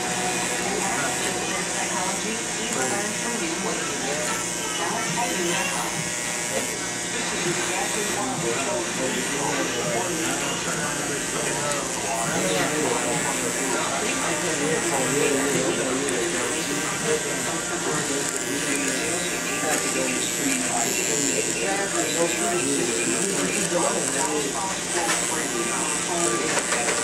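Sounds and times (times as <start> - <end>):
electric hair clippers buzzing: 0.0 - 27.0.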